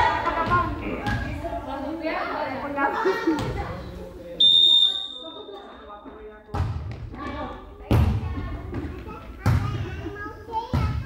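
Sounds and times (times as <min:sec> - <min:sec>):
referee's whistle: 0:04.4 - 0:05.6.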